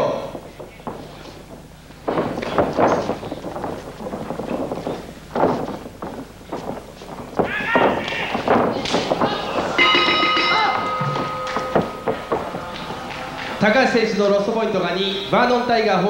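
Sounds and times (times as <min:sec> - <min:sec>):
feet thudding on canvas: 0:00.5 - 0:10.2
voices: 0:07.4 - 0:16.0
bell ringing: 0:09.8 - 0:14.0.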